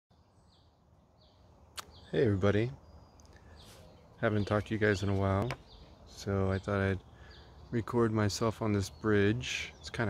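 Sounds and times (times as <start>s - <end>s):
faint bird chirps: 0.2s - 8.1s.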